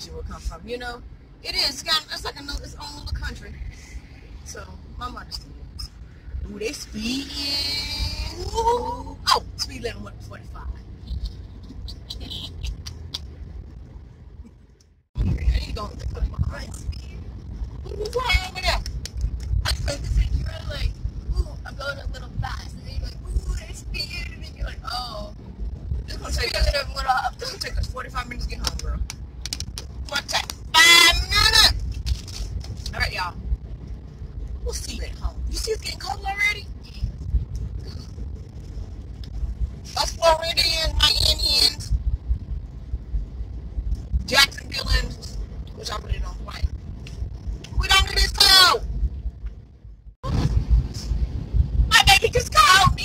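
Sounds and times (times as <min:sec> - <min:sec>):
woman talking: 0:00.0 - 0:03.8, 0:04.5 - 0:05.4, 0:06.4 - 0:10.8, 0:15.2 - 0:17.1, 0:17.8 - 0:18.8, 0:19.6 - 0:25.4, 0:26.1 - 0:29.1, 0:30.0 - 0:31.8, 0:32.9 - 0:33.4, 0:34.6 - 0:37.0, 0:39.9 - 0:41.9, 0:44.2 - 0:46.7, 0:47.8 - 0:48.8, 0:51.9 - 0:53.0
car driving rumble inside cabin: 0:00.0 - 0:53.0.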